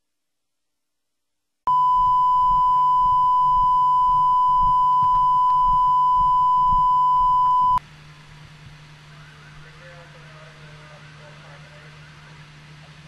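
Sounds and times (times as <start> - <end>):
steady reference tone beep: 1.7 - 7.8.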